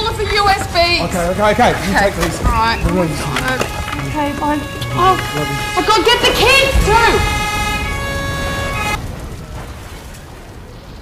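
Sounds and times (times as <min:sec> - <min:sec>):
vehicle horn blast: 0:02.6 - 0:09.0.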